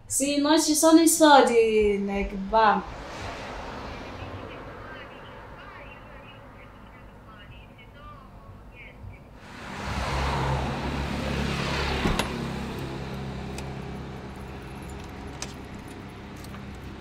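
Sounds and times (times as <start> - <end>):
vehicle passing by: 1.4 - 8.0, 9.3 - 17.0.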